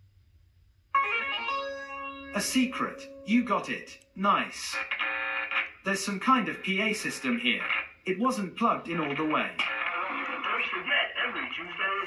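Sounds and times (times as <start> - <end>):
plucked-string jingle from speaker: 1.0 - 4.2.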